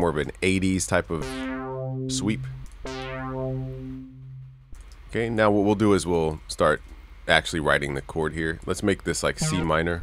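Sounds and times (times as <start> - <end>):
brassy synthesizer note: 1.2 - 4.8.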